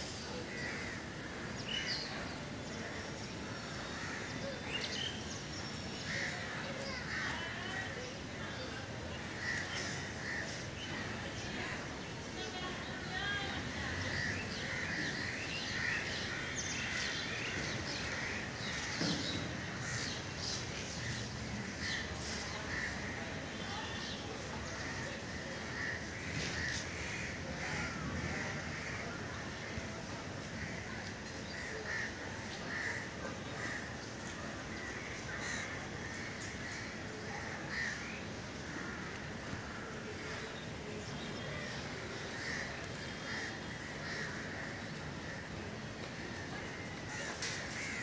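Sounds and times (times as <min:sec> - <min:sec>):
outdoor background noise: 0:00.0 - 0:48.0
steady background noise: 0:00.0 - 0:48.0.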